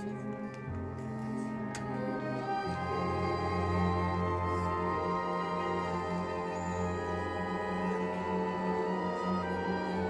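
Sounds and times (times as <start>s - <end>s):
orchestra playing classical music: 0.0s - 10.0s.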